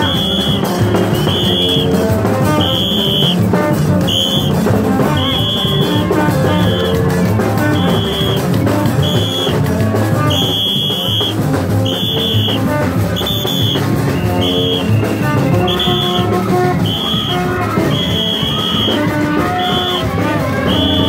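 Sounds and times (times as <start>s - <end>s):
high shrill note: 0.0s - 3.4s
steady drum rhythm: 0.0s - 21.0s
tube trumpets blowing notes: 0.0s - 21.0s.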